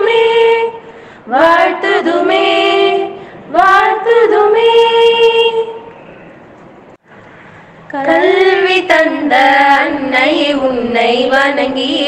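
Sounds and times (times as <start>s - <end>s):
woman singing unaccompanied: 0.0s - 5.8s, 7.9s - 12.0s.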